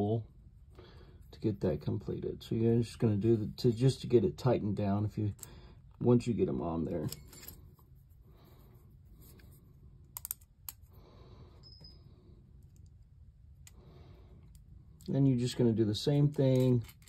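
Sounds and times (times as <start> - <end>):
small parts clicking in hands: 10.0 - 11.0, 12.6 - 15.1, 16.2 - 17.0.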